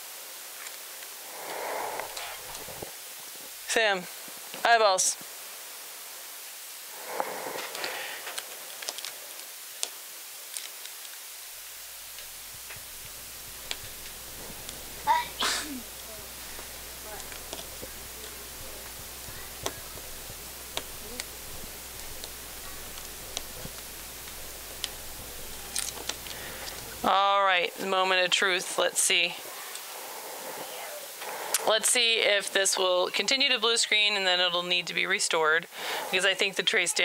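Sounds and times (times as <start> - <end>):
steady hiss: 0.0 - 37.0
breathy vocal sound: 1.2 - 2.9, 6.9 - 8.5, 25.3 - 27.1, 35.7 - 36.2
low hum: 11.5 - 28.6.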